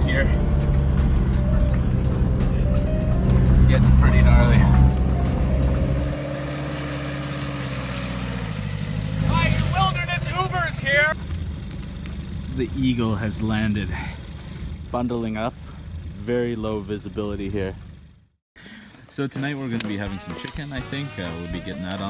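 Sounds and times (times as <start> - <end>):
music with voices: 0.0 - 6.6, 19.3 - 22.0
van engine running: 0.0 - 18.4.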